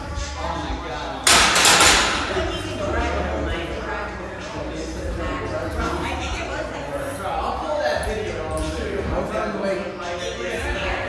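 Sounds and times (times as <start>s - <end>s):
background chatter: 0.0s - 11.0s
barbell crashing on rubber floor: 1.3s - 2.4s.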